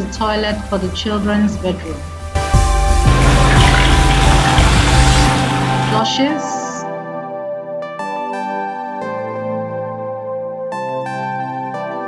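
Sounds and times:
toilet flushing: 3.0s - 6.5s.

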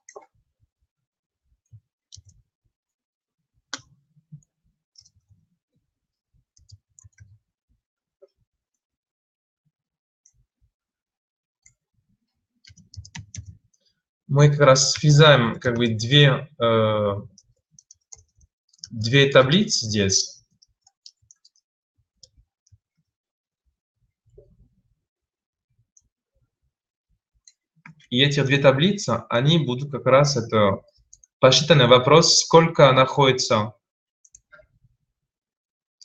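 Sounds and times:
keyboard and mouse clicks: 0.0s - 0.3s, 2.1s - 2.4s, 6.6s - 7.4s, 12.6s - 13.9s
computer keyboard keystrokes: 12.7s - 13.6s.

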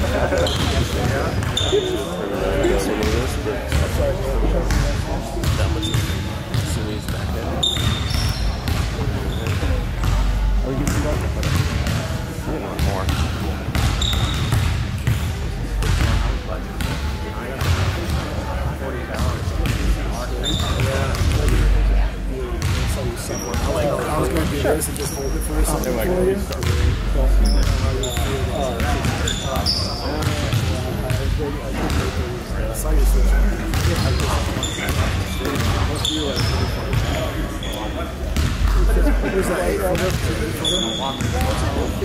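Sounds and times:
basketball bouncing on hardwood: 33.7s - 34.0s.

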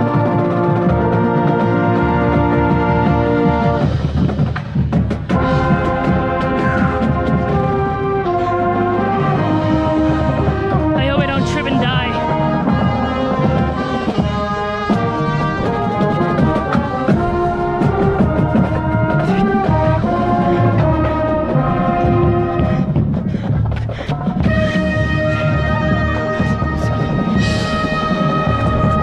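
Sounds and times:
bass drum: 0.0s - 29.0s
marching band playing: 0.0s - 29.0s.

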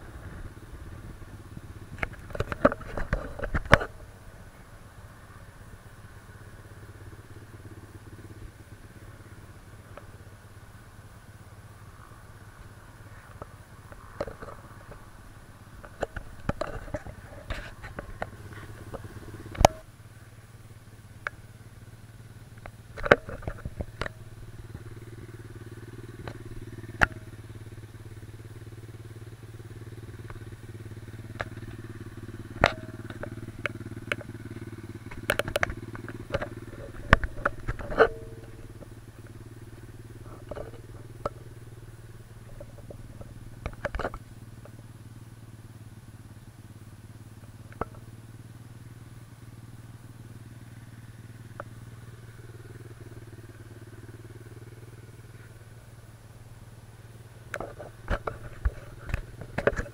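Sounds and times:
dirt bike engine idling: 0.0s - 59.9s
sharp clicks and knocks: 1.9s - 4.0s, 13.3s - 15.1s, 15.7s - 19.9s, 22.5s - 24.9s, 26.1s - 27.4s, 32.4s - 44.8s, 47.7s - 48.1s, 57.4s - 59.9s.

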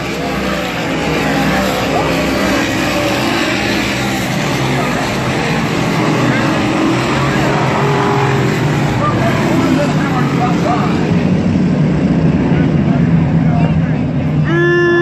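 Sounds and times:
race car engines roaring: 0.0s - 15.0s.

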